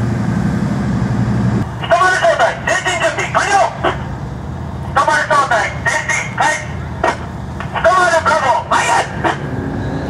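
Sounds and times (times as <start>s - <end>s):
tank diesel engines idling: 0.0s - 10.0s
person speaking: 1.8s - 4.1s, 4.9s - 9.4s.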